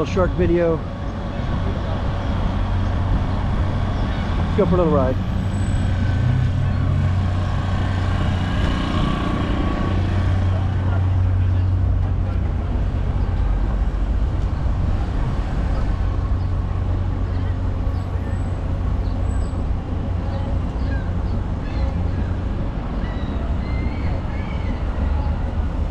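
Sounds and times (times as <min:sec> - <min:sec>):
indistinct voices of passers-by: 0:00.0 - 0:25.9
low rumble of city traffic: 0:00.0 - 0:25.9.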